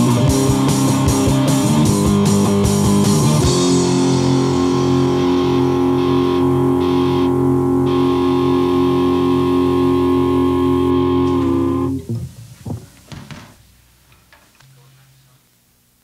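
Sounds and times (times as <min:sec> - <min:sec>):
distorted electric guitar chord: 0:00.0 - 0:13.5.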